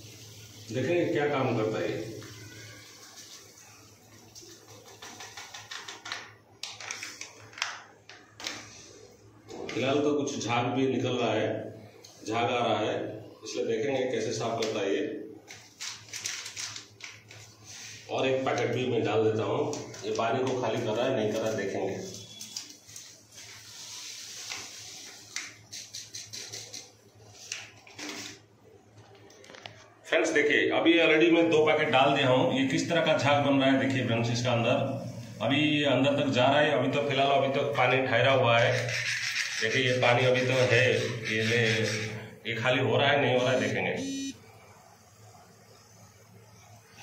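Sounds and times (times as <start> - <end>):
powder pouring hiss: 0.0 - 5.6, 17.5 - 18.2, 23.0 - 26.8.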